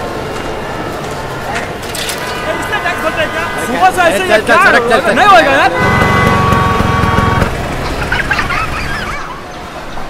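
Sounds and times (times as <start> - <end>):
traffic rumble: 0.0 - 10.0
vehicle horn: 2.1 - 7.8.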